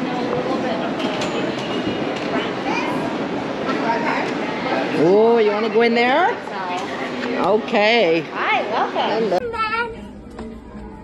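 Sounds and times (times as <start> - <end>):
shopping mall rumbling ambience: 0.0 - 11.0.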